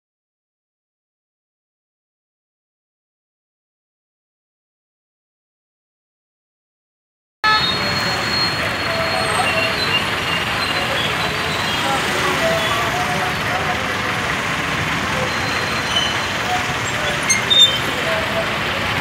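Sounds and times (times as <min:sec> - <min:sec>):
car horn toots: 0:07.4 - 0:08.6
crowd hubbub: 0:07.4 - 0:19.0
traffic engines crawling: 0:07.4 - 0:19.0.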